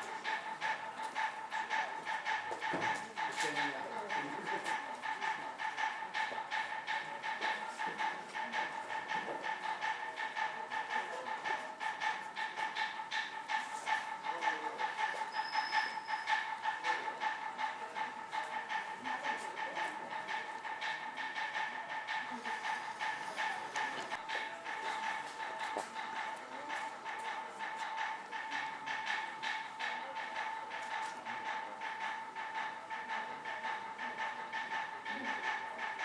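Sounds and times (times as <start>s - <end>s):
rhythmic clacking: 0.0s - 36.0s.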